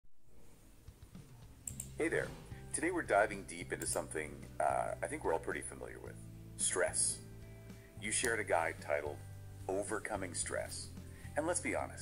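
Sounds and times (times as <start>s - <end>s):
keyboard typing: 1.6s - 2.0s.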